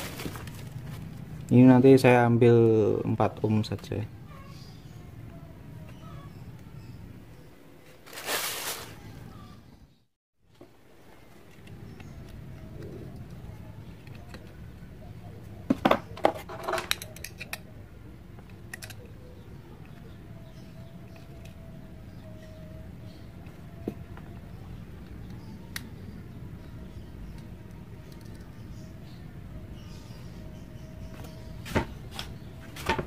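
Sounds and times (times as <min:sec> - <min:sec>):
steady low hum: 0:10.7 - 0:33.0.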